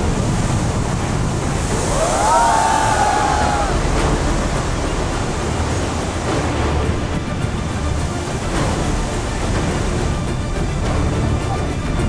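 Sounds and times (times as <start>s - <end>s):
sea surf: 0.0s - 12.0s
wind buffeting microphone: 0.0s - 12.0s.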